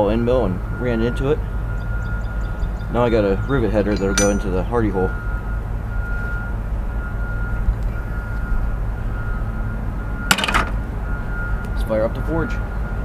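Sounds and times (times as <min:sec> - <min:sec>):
heavy construction machinery rumble: 0:00.0 - 0:13.0
metal clattering on metal: 0:03.8 - 0:04.7.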